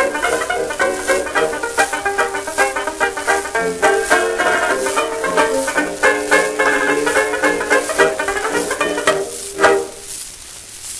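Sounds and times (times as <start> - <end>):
banjo-led dance orchestra: 0.0 - 10.2
record surface crackle and hiss: 0.0 - 10.9.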